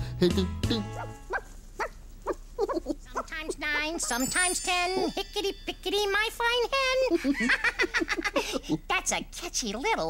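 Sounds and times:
music: 0:00.0 - 0:01.3, 0:04.2 - 0:05.8.

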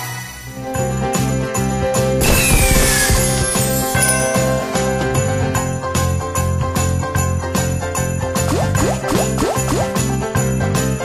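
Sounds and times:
slot machine game music: 0:02.2 - 0:06.3.

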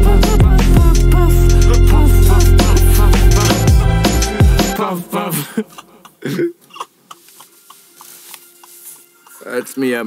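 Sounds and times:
person coughing: 0:05.3 - 0:07.0.

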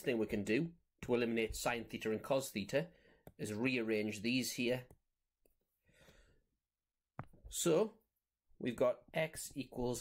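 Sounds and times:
faint breath: 0:05.8 - 0:06.5.

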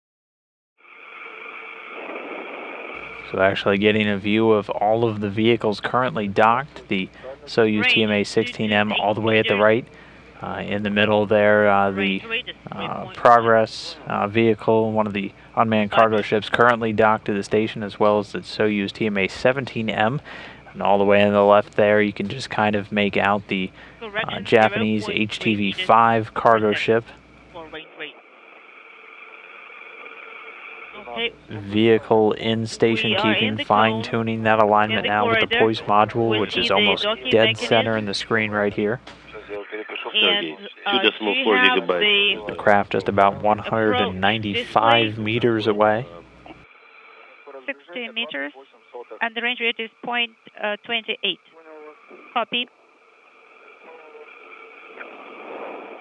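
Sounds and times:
faint steady whine: 0:00.8 - 0:56.0
steady static hiss: 0:00.8 - 0:56.0.

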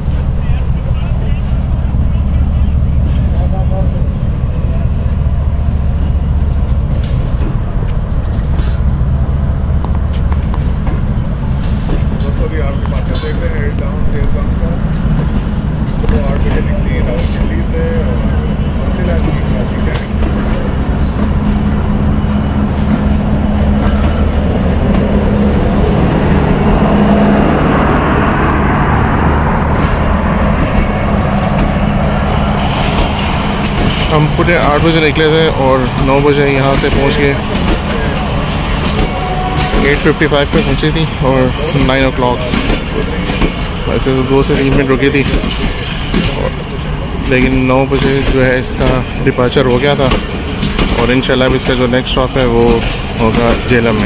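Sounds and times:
train coaches rumbling past: 0:00.0 - 0:54.0.

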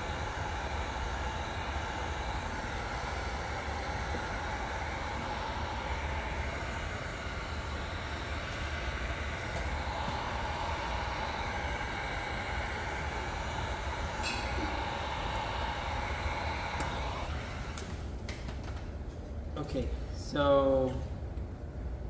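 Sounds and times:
heat gun blowing air: 0:00.0 - 0:18.0.

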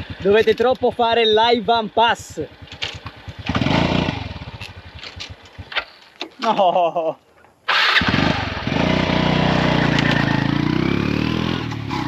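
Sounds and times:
small motorbike engine puttering: 0:00.0 - 0:01.1, 0:02.5 - 0:06.5, 0:09.8 - 0:10.5.

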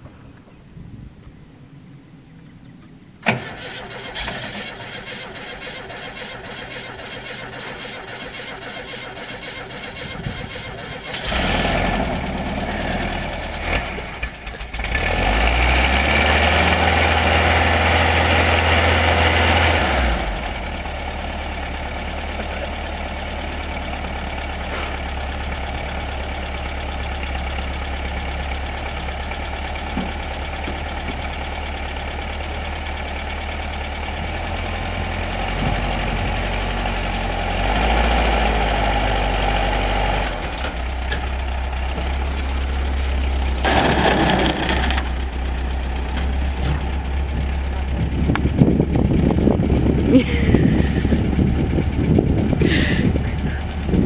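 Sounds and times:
engine starting and idling: 0:03.2 - 0:54.0.

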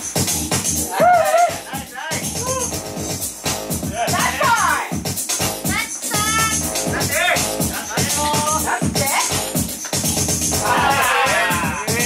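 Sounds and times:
house music beat: 0:00.0 - 0:12.0
high sliding vocal sounds: 0:10.5 - 0:12.0.

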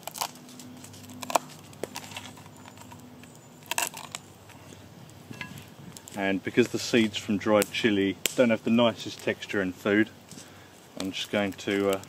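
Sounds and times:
dry chilli skins crinkling: 0:00.0 - 0:12.0.

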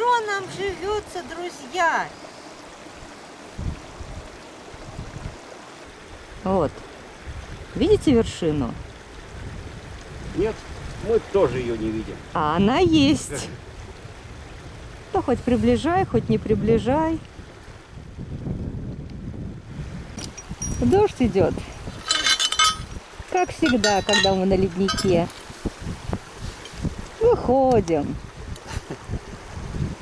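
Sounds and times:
rain: 0:00.0 - 0:30.0
wind: 0:00.0 - 0:30.0
low bumps: 0:19.9 - 0:27.2.

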